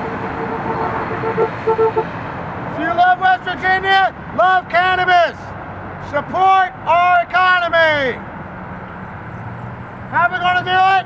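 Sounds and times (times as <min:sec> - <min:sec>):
car horn honking: 0:00.0 - 0:02.1
street traffic passing: 0:00.0 - 0:11.0.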